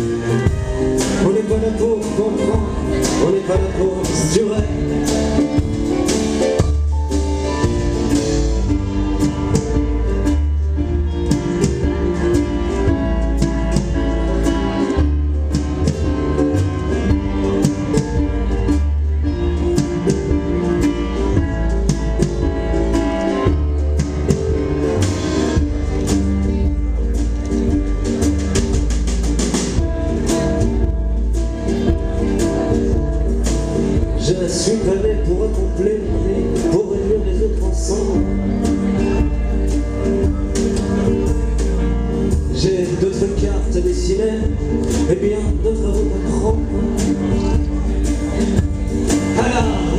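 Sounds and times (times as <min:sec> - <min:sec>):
live band instrumental: 0:00.0 - 0:49.9.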